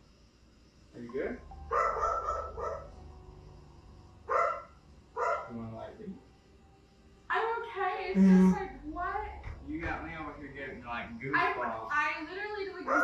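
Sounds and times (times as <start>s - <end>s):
short pitched cries: 8.2s - 8.6s.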